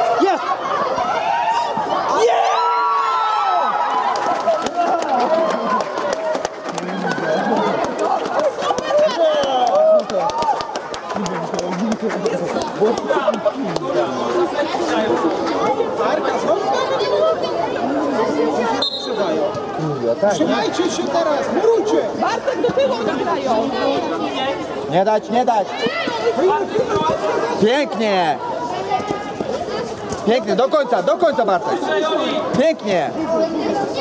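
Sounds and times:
many voices calling out: 0.0s - 10.6s.

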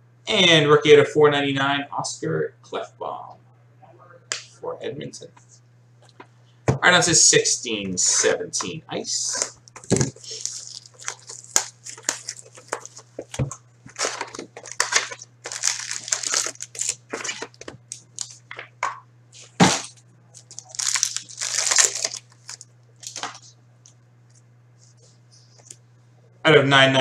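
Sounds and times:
plastic wrapper tearing and crinkling: 9.4s - 18.4s, 20.4s - 23.5s.

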